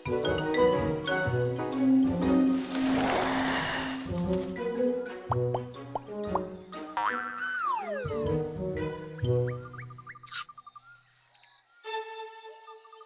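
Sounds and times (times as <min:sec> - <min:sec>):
cartoon background music: 0:00.0 - 0:10.5, 0:11.8 - 0:13.0.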